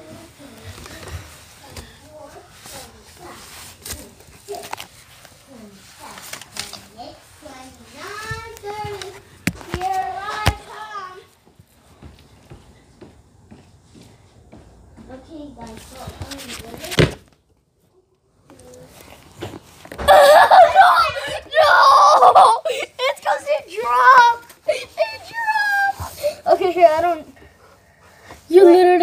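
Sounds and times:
children talking: 0:00.0 - 0:12.1, 0:14.6 - 0:17.2, 0:18.0 - 0:29.0
high-pitched child's voice: 0:07.0 - 0:11.3, 0:20.0 - 0:27.4, 0:28.5 - 0:29.0.

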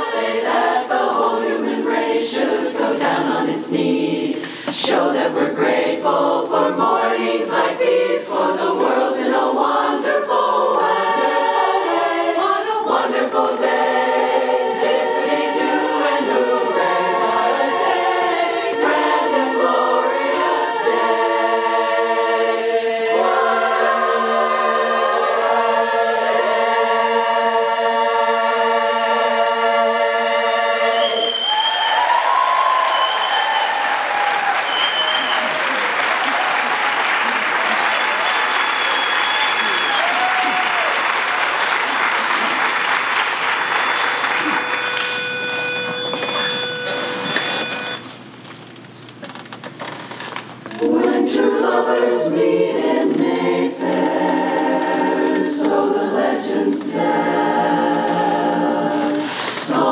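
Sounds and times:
women's chorus singing: 0:00.0 - 0:34.1, 0:50.7 - 0:59.9
whistles and cheers: 0:30.9 - 0:41.6, 0:43.4 - 0:45.2
audience applause: 0:31.2 - 0:47.0.

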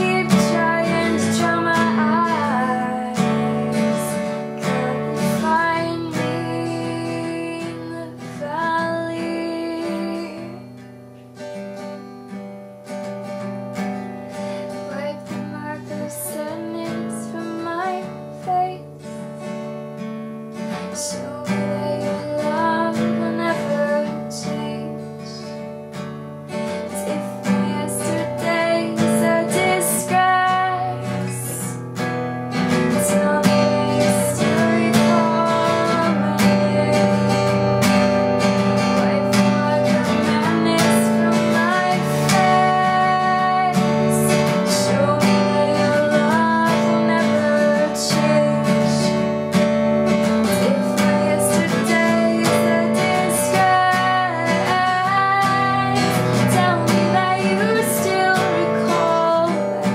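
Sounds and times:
woman singing: 0:00.0 - 0:11.0, 0:13.3 - 0:19.5, 0:20.5 - 0:59.9
acoustic guitar strumming: 0:00.0 - 0:59.9.

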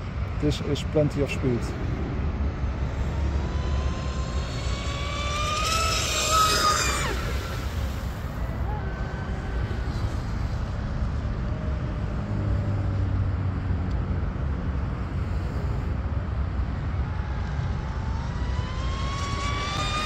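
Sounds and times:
electric motor whining: 0:02.8 - 0:09.2.

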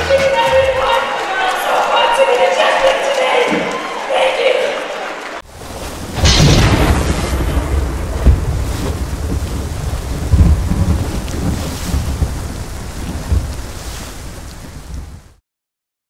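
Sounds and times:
steady rain: 0:00.0 - 0:15.4
thunder rolling: 0:05.4 - 0:15.4.

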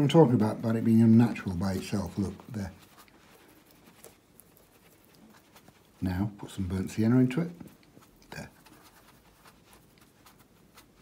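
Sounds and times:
paintbrush scratching in palette: 0:00.0 - 0:11.0.

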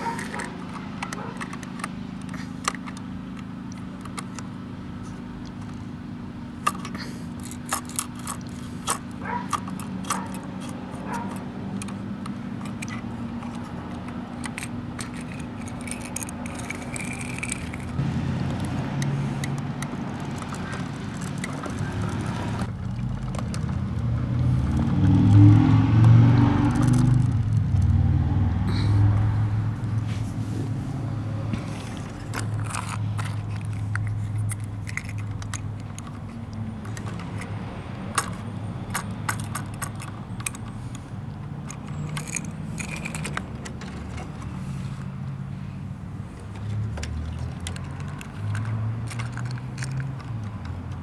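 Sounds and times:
truck diesel engine revving: 0:08.6 - 0:34.6
small clicks: 0:46.6 - 0:51.0.

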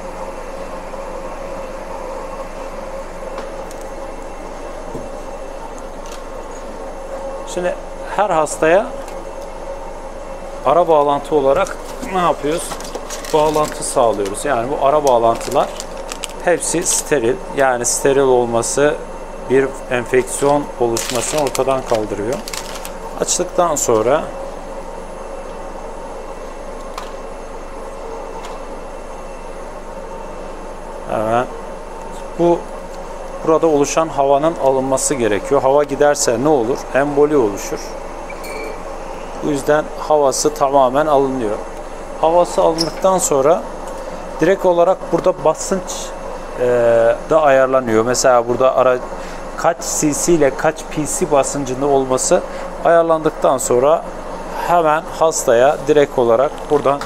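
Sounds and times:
machine hum: 0:00.0 - 0:57.0.

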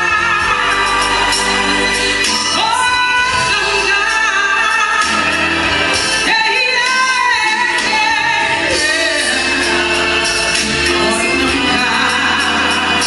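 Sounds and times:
backing band playing: 0:00.0 - 0:13.0
woman singing gospel: 0:00.0 - 0:13.0.

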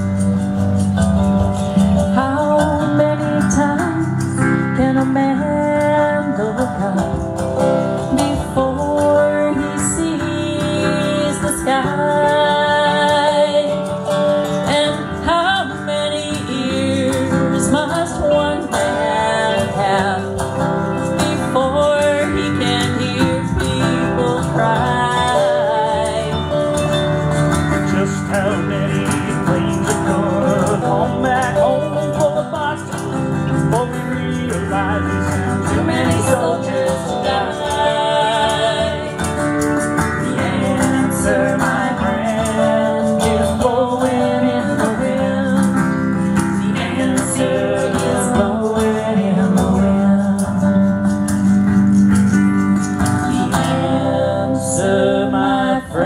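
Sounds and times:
electric lead guitar: 0:00.0 - 0:56.0
strummed acoustic guitar: 0:00.0 - 0:56.0.

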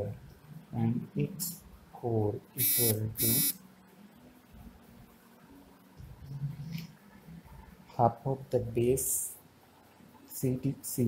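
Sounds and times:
faint low hum: 0:00.0 - 0:11.0
man speaking: 0:00.8 - 0:03.5.

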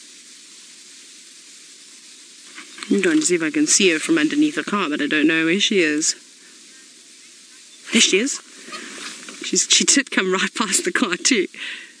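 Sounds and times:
faint outdoor background hiss: 0:00.0 - 0:12.0
woman's voice: 0:02.9 - 0:06.2, 0:07.9 - 0:08.5, 0:09.4 - 0:11.8.

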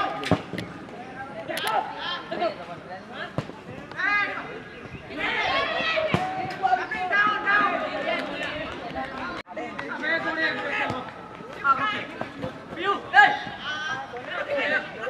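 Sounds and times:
boys shouting: 0:05.1 - 0:08.4, 0:12.8 - 0:15.0.

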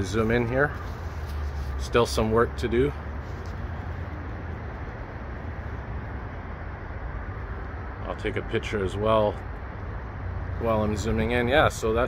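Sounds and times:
urban roadside rumble: 0:00.0 - 0:12.0.

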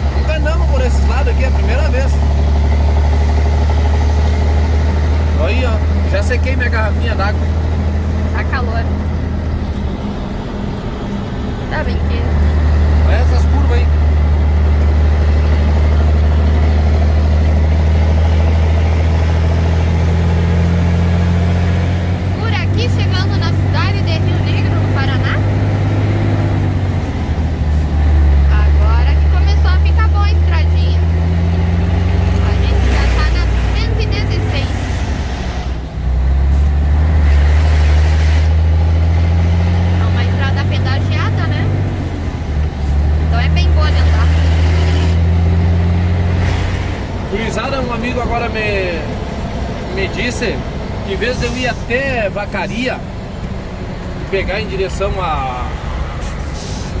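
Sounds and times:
truck diesel engine droning: 0:00.0 - 0:57.0.

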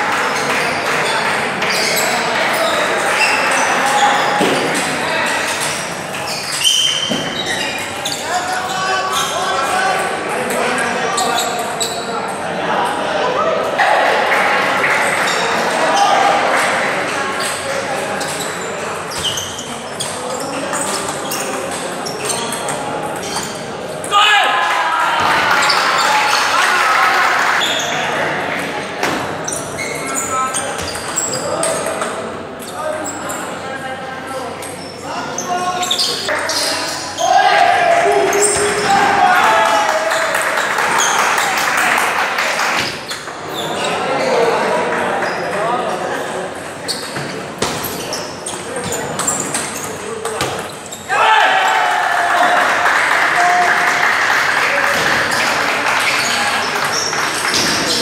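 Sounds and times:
babble of many voices: 0:00.0 - 0:58.0.

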